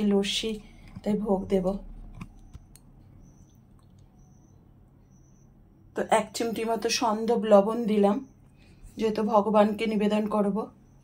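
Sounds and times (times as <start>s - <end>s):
woman speaking: 0.0s - 2.0s, 5.9s - 10.8s.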